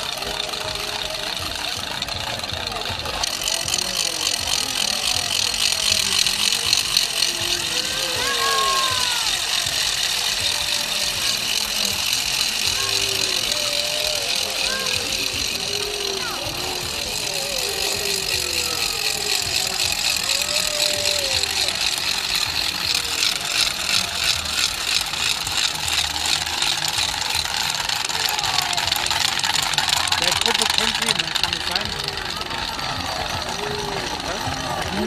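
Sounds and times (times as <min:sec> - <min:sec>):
crowd voices: 0:00.0 - 0:35.0
wooden ratchets clattering: 0:00.0 - 0:35.0.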